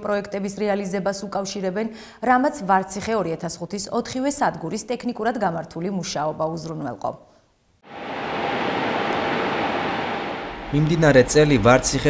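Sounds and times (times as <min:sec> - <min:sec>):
faint steady hum: 0:07.6 - 0:12.0
generator rushing noise: 0:07.8 - 0:12.0.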